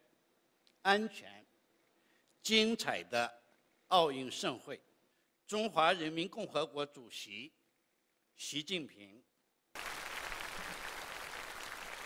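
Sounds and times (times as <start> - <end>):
audience applauding: 9.8 - 12.0.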